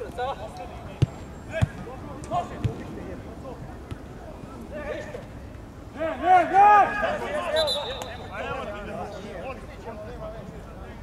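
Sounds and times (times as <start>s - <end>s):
football being kicked: 1.0s - 1.9s
players shouting: 5.9s - 8.7s.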